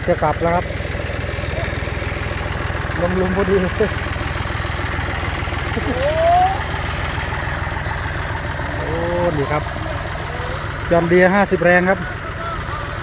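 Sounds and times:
tractor diesel engine idling: 0.0s - 13.0s.

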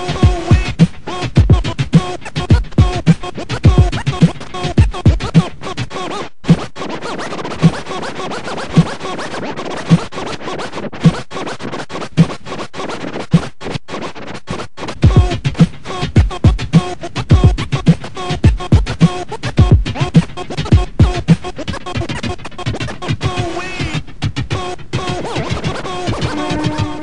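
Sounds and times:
hip-hop beat: 0.0s - 27.0s
turntable scratching: 0.0s - 27.0s.

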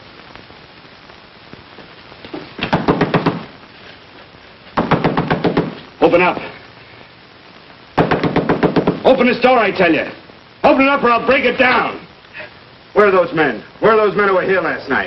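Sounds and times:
fist pounding on a door: 2.7s - 3.4s, 4.8s - 5.8s, 8.0s - 9.0s.

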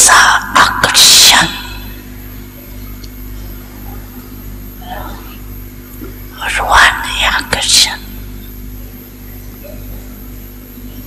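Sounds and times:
woman speaking into microphone: 0.0s - 2.0s, 6.4s - 8.2s
low electrical hum: 0.0s - 11.0s.

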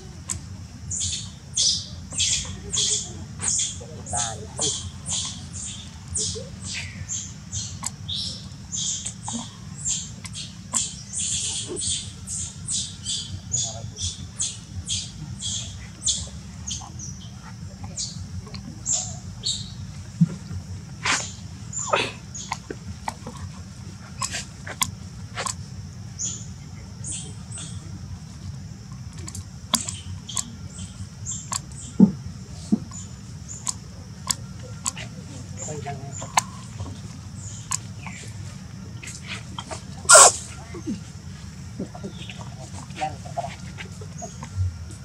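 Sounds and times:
low background rumble: 0.0s - 45.0s
baby monkey squeaking: 1.0s - 7.9s, 39.6s - 40.4s
infant monkey squeaking: 1.0s - 16.9s, 39.6s - 40.9s.

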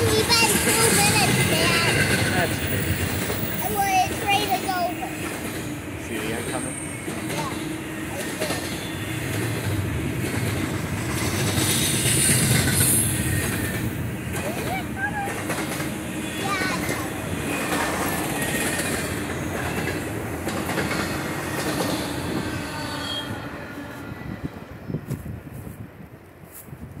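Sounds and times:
freight train wheels clattering: 0.0s - 22.8s.

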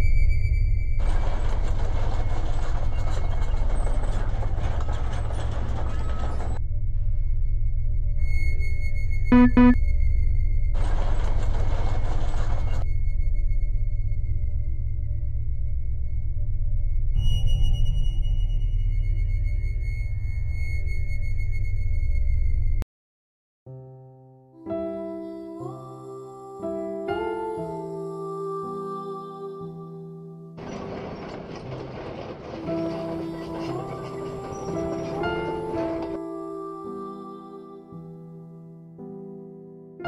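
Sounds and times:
robot rover rattling and rumbling: 1.0s - 6.6s, 30.6s - 36.2s
tracked wheels rolling effect: 1.0s - 6.6s, 30.6s - 36.3s
faint high held tones: 9.3s - 9.8s
soft music: 9.3s - 9.8s, 23.7s - 30.6s, 32.8s - 40.0s.

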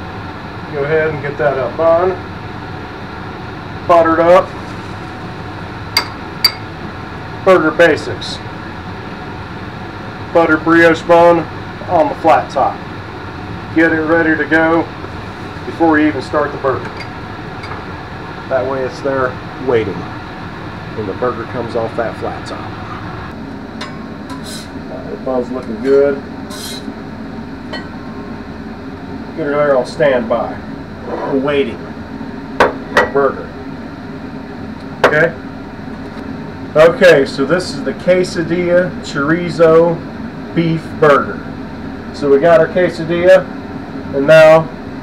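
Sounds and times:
steady background hum: 0.0s - 45.0s
metal spatula on griddle: 23.8s - 24.8s, 26.5s - 26.9s.

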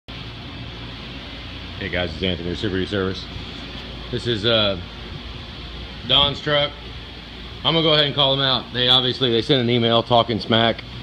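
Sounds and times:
air conditioner humming: 0.1s - 11.0s.

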